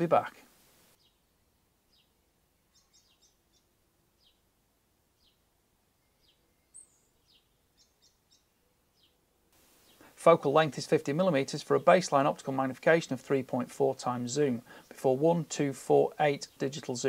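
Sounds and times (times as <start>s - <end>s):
faint high bird chirps: 1.0s - 4.5s, 5.2s - 9.2s.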